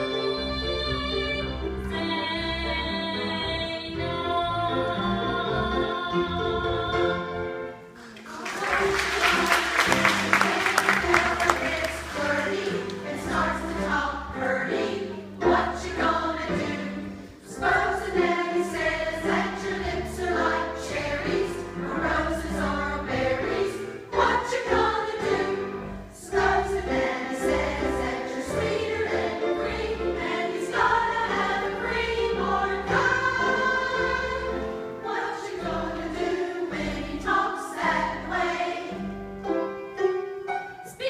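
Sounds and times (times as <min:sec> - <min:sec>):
choir of women singing: 0:00.0 - 0:39.4.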